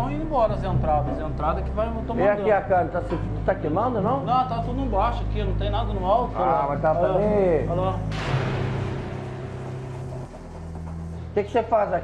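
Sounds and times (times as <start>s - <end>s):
low background music: 0.0s - 12.0s
boom with hissing tail: 8.0s - 11.2s.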